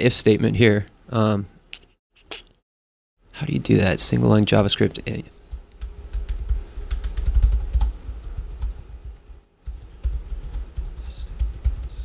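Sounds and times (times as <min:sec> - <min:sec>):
computer keyboard typing: 0:05.5 - 0:12.0.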